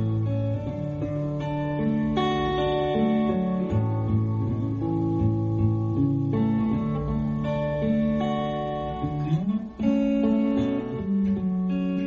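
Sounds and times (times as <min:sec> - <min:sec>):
guitar-led instrumental music: 0:00.0 - 0:12.0.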